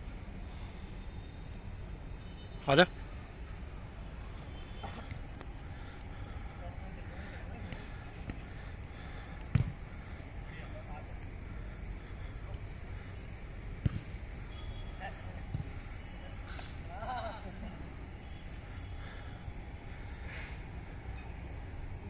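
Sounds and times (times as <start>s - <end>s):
faint distant voices: 3.8s - 20.6s
football kick thumps: 9.4s - 9.8s, 13.8s - 14.2s, 15.5s - 15.8s.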